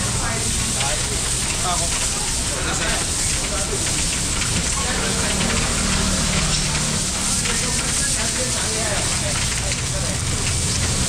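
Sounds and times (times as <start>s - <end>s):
steady rain hissing: 0.0s - 11.0s.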